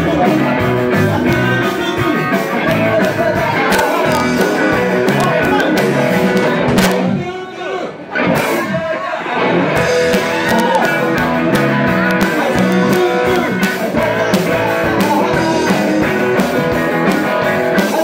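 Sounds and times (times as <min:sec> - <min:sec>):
man singing: 0:00.0 - 0:06.7, 0:09.9 - 0:18.0
rock band playing: 0:00.0 - 0:07.3, 0:08.0 - 0:18.0.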